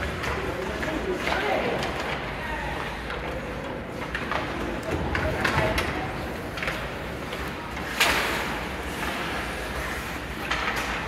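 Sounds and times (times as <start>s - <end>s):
skate blades scraping ice: 0.0s - 11.0s.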